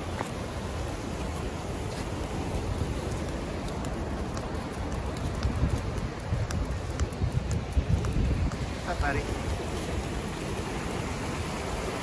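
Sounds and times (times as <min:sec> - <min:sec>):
river water rushing over rapids: 0:00.0 - 0:12.0
wind gusting on microphone: 0:00.0 - 0:12.0.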